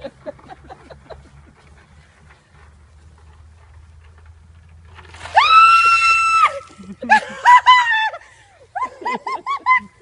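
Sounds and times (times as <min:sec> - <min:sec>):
ice water splashing: 0:05.0 - 0:07.0
woman screaming: 0:05.3 - 0:06.7.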